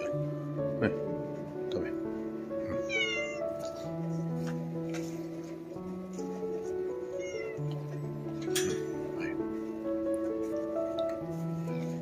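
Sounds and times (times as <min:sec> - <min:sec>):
background music: 0:00.0 - 0:12.0
cat meowing: 0:02.6 - 0:03.7, 0:07.0 - 0:07.6.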